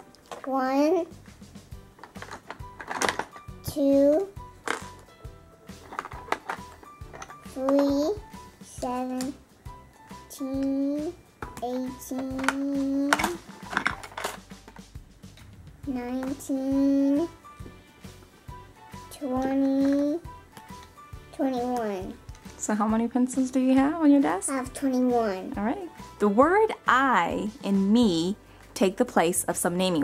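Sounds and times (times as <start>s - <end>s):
pencils clicking on tabletop: 2.0s - 5.1s, 5.7s - 8.2s, 10.4s - 15.5s, 19.2s - 22.5s.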